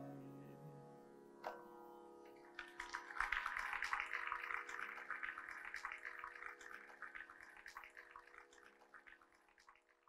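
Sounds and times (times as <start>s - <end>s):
audience applause: 2.6s - 6.5s.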